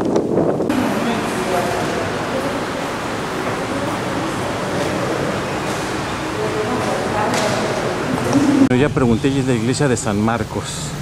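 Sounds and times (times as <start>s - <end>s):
steady rushing noise: 0.2s - 10.2s
muffled speech: 0.7s - 10.9s.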